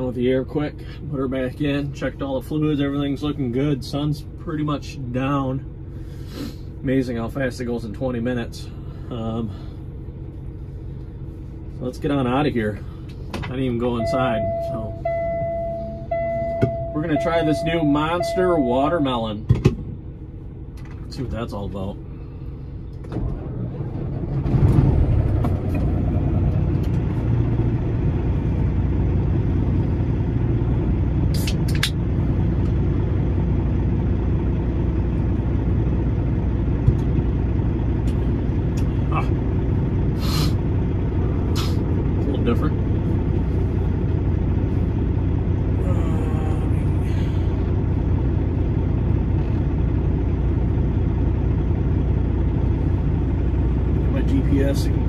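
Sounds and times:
diesel truck engine idling: 0:00.0 - 0:55.0.

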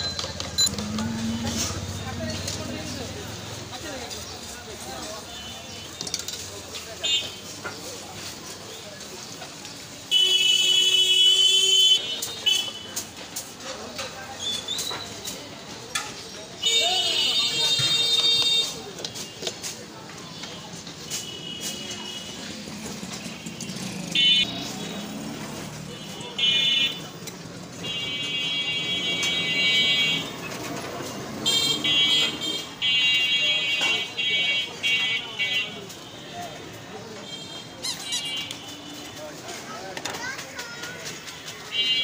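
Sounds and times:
people's voices: 0:00.0 - 0:11.0, 0:12.0 - 0:42.0
street traffic hum: 0:00.0 - 0:42.0
vehicle horn honks: 0:16.7 - 0:18.8, 0:31.4 - 0:36.4.

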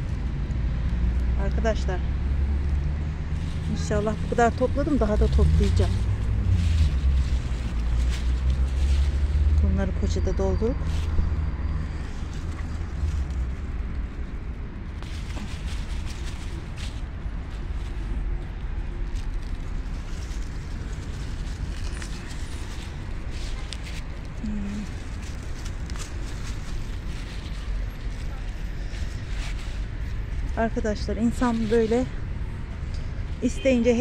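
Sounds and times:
lettuce leaves rustling: 0:03.2 - 0:32.8
plastic bag handled: 0:03.4 - 0:32.4.

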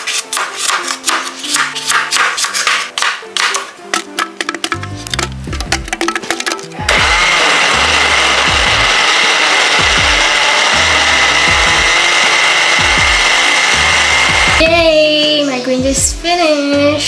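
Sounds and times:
blender motor whirring: 0:06.9 - 0:14.8.

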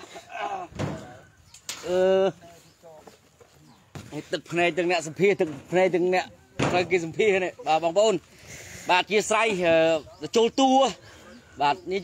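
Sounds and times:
dull thump: 0:06.6 - 0:07.0.

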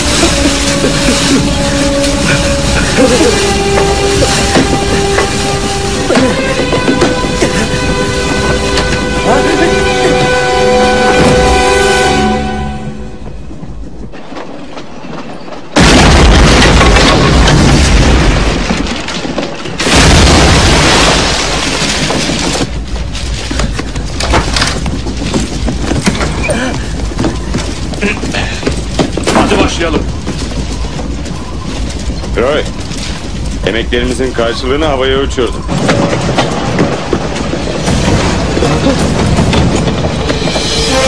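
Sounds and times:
loud explosions rumbling: 0:00.0 - 0:12.1, 0:15.8 - 0:41.0
busy noise: 0:00.0 - 0:14.0
voices: 0:06.0 - 0:10.5.

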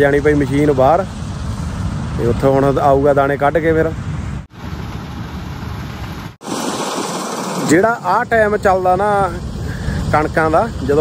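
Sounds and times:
combine harvester running: 0:00.0 - 0:11.0.

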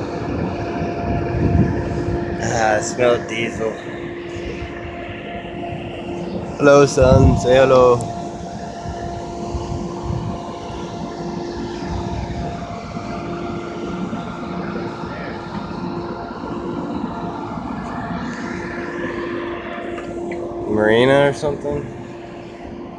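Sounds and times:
boat motor running: 0:00.0 - 0:22.9
wind rushing: 0:00.0 - 0:22.9.

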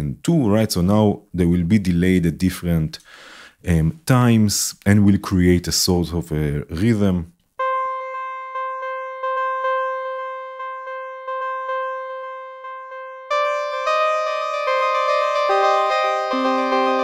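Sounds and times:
synthesizer notes with echoes: 0:07.6 - 0:17.0.

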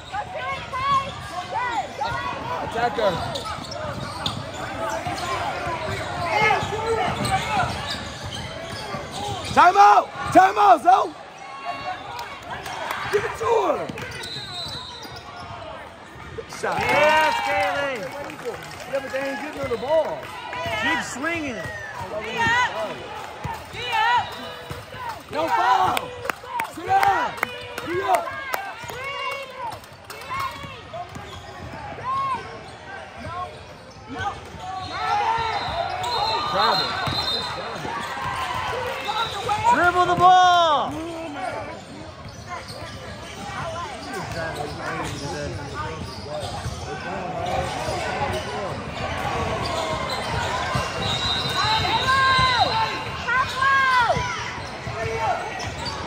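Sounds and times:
shoe squeaks: 0:00.0 - 0:09.6, 0:14.0 - 0:15.8, 0:31.2 - 0:38.3, 0:40.9 - 0:56.0.

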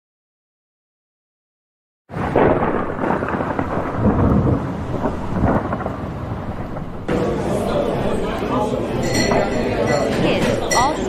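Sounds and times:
steady rain: 0:02.1 - 0:10.7
rolling thunder: 0:02.1 - 0:10.8.

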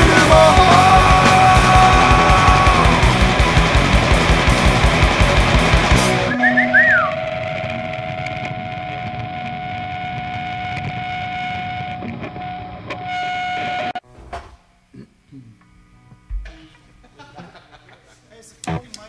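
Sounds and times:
fast punk rock: 0:00.0 - 0:12.0
electric guitar feedback: 0:00.0 - 0:14.0.

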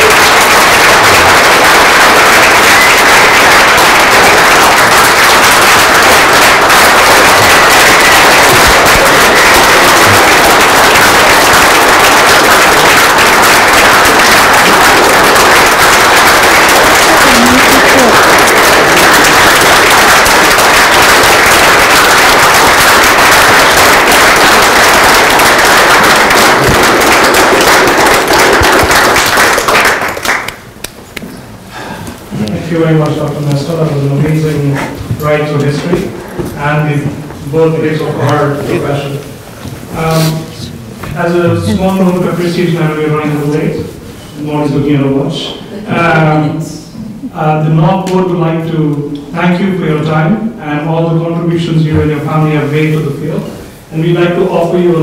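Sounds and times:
audience applauding: 0:00.0 - 0:31.2.

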